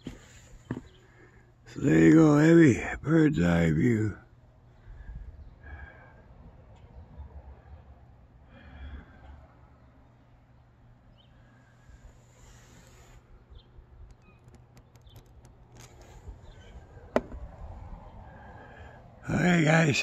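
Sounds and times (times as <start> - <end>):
wind rumble on microphone: 16.0 - 19.1.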